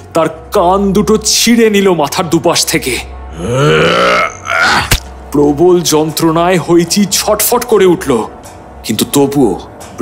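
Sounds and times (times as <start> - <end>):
low music drone: 0.0 - 10.0.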